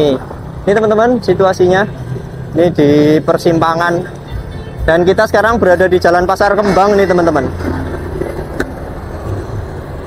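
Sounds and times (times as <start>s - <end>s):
scooter engine and road rumble: 0.0s - 10.0s.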